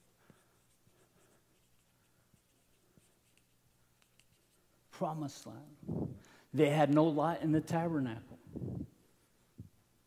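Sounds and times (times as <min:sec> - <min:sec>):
marker writing on whiteboard: 0:00.6 - 0:04.6.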